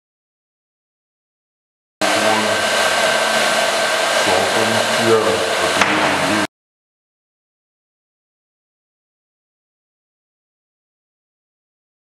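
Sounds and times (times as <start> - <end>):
faint motor whine: 2.0 - 6.5
loud rushing noise: 2.0 - 6.5.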